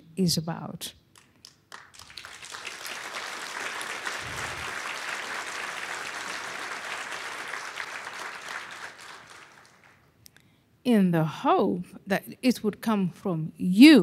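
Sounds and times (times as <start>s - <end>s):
audience applauding: 1.2s - 10.1s.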